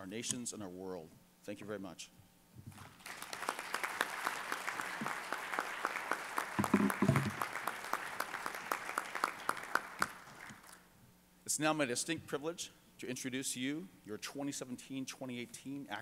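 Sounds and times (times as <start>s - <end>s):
audience applause: 3.0s - 10.8s.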